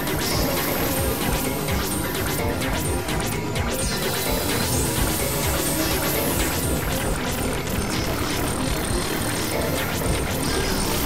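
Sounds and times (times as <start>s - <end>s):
synthesizer noise drone: 0.0s - 11.0s.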